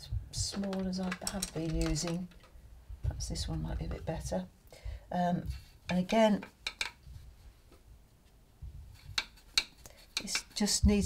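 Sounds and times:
paintbrush clicking on metal box: 0.5s - 2.4s, 9.0s - 10.8s.

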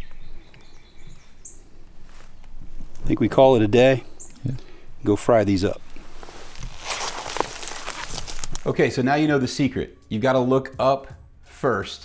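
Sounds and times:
leaves rustling and crackling: 1.2s - 8.8s.

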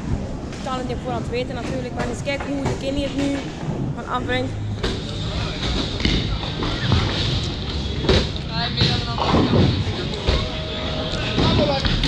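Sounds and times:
scattered voices: 0.0s - 12.0s.

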